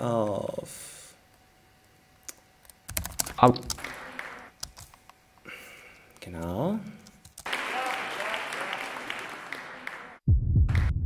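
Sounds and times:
keyboard typing: 2.6s - 5.0s, 6.2s - 7.5s.

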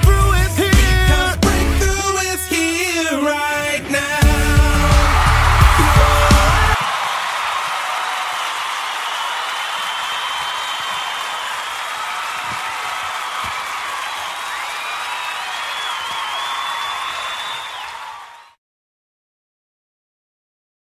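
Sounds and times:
audience applauding and cheering: 4.2s - 18.6s
high cries: 4.7s - 18.5s.

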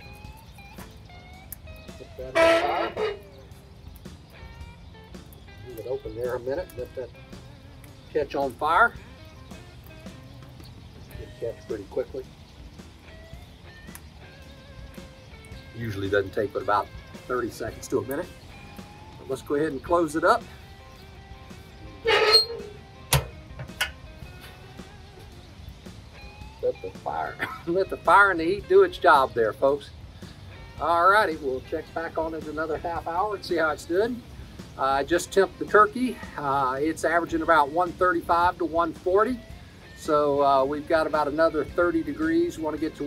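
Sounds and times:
quiet background music: 0.0s - 43.0s
metal door scraping: 2.3s - 3.3s, 22.0s - 24.0s
metal door clanking shut: 22.0s - 24.0s.

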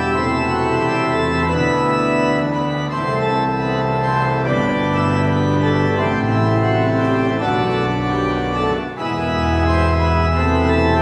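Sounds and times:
pipe organ chords: 0.0s - 11.0s.

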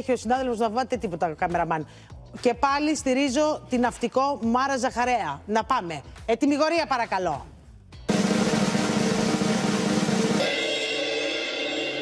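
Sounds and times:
snare drum roll: 8.1s - 12.0s.

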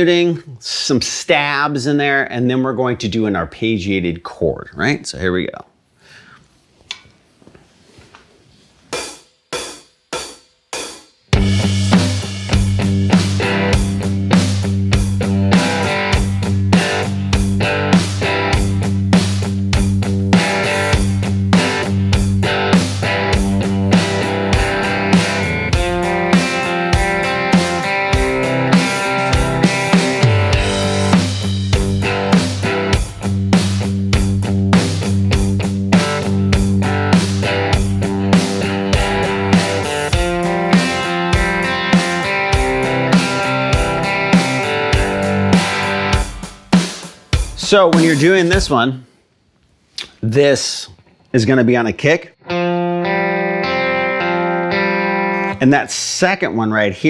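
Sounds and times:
drum kit groove: 8.8s - 49.0s
electric guitar rhythm playing: 11.3s - 48.8s, 52.3s - 55.7s.

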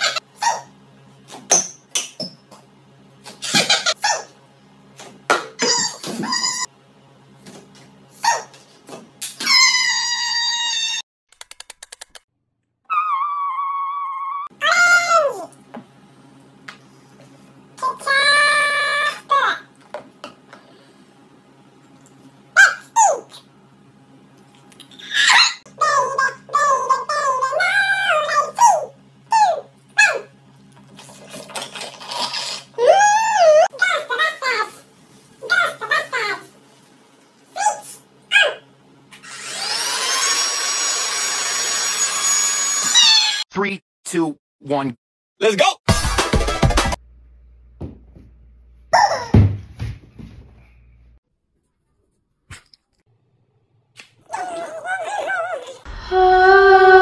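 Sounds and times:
slurping through straws: 30.9s - 32.8s
wavering voice-like sound: 54.3s - 57.0s.

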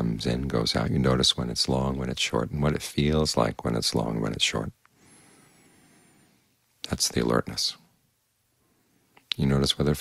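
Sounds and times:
man speaking: 0.0s - 4.8s, 6.8s - 7.9s, 9.3s - 10.0s
faint room noise: 0.0s - 10.0s.

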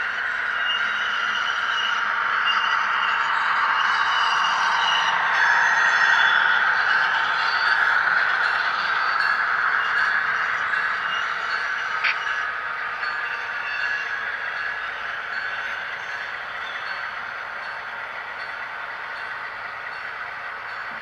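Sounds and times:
model train wheels rushing on rail: 0.0s - 21.0s.

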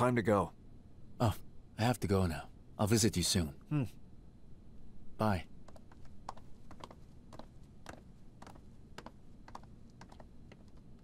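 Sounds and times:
footsteps on stone floor: 5.7s - 10.9s.

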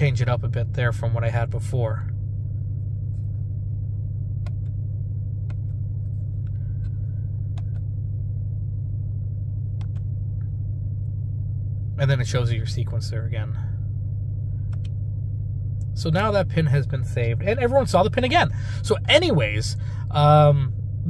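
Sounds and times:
truck engine idling: 12.8s - 21.0s.

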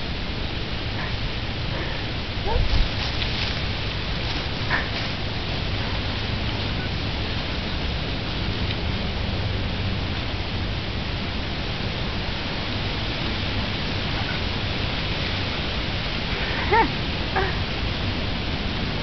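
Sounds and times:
steady background noise: 0.0s - 19.0s.

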